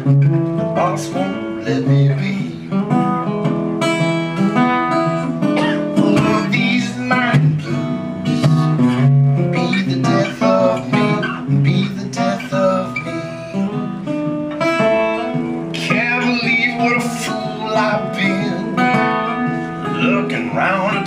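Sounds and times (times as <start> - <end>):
acoustic guitar blues solo: 0.0 - 21.0.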